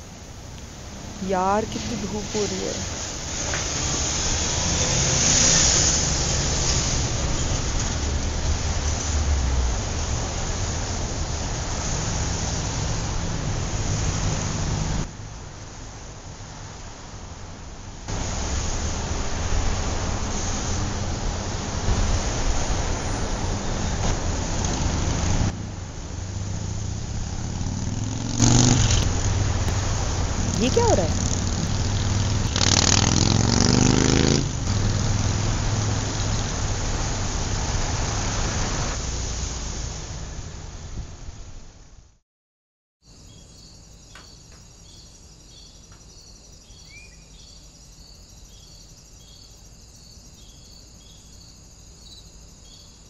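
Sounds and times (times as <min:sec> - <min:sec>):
high continuous insect buzz: 0:00.0 - 0:37.4, 0:43.0 - 0:53.0
traffic engine hum: 0:00.0 - 0:40.9
insects chirping: 0:26.5 - 0:37.2, 0:43.0 - 0:53.0.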